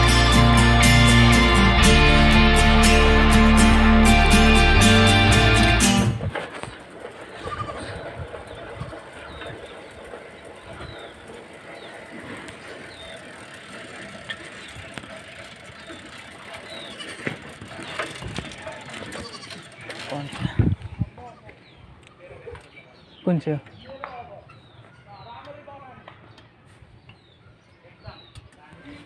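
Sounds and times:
birds chirping: 0.0s - 29.0s
faint indistinct voices: 13.1s - 26.9s.

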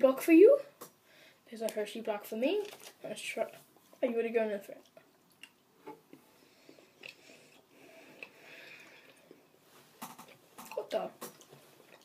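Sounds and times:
chewing with mouth clicks: 4.8s - 7.6s.

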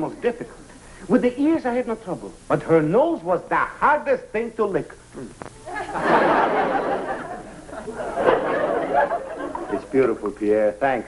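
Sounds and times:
audience laughter: 5.7s - 10.1s.

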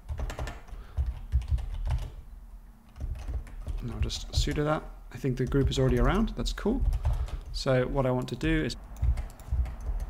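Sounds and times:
computer keyboard typing: 0.0s - 2.2s, 2.9s - 10.0s.

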